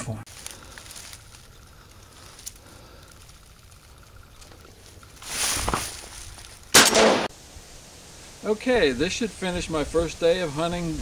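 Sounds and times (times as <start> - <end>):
shotgun shot: 6.7 - 7.3.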